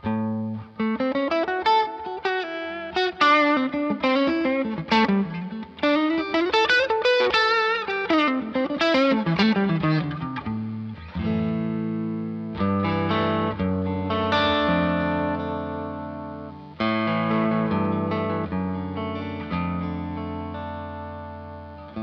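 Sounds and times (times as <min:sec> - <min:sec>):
electric guitar lead lines: 0:00.0 - 0:22.0.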